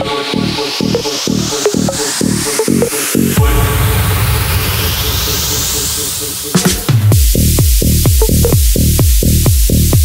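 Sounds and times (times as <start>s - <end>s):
white-noise sweep rising: 0.0s - 8.5s
held low bass: 0.0s - 10.0s
minimal techno music: 0.0s - 10.0s.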